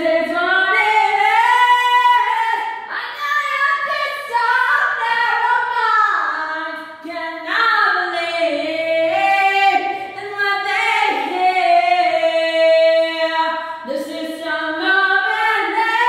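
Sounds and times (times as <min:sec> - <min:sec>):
woman singing unaccompanied: 0:00.0 - 0:16.0.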